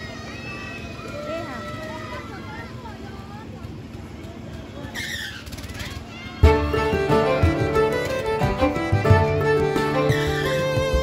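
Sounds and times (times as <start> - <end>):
swing ride rumbling: 0.0 - 11.0.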